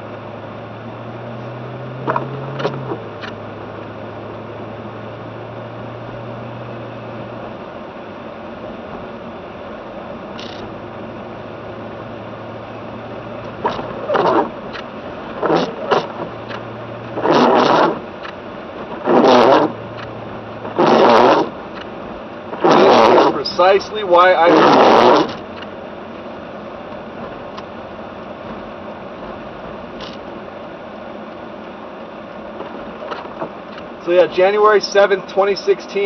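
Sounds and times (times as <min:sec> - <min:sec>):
car engine and tyre hum: 0:00.0 - 0:36.0
windshield wipers scraping glass: 0:02.0 - 0:03.4, 0:10.4 - 0:10.8, 0:13.4 - 0:25.8, 0:26.9 - 0:30.5, 0:32.4 - 0:35.0.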